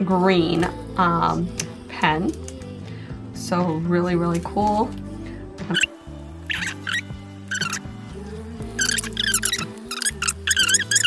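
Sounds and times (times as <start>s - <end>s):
background music with held chords: 0.0s - 11.0s.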